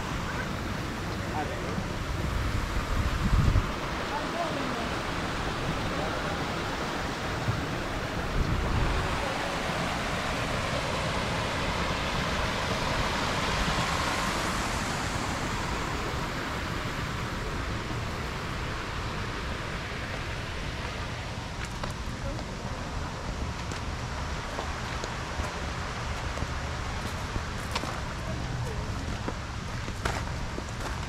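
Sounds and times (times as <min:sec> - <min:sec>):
small waterfall splashing: 0:00.0 - 0:31.0.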